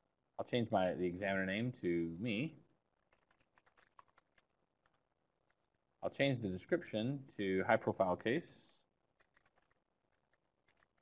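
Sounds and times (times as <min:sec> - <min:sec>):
faint keyboard typing: 0:02.9 - 0:05.8, 0:08.7 - 0:11.0.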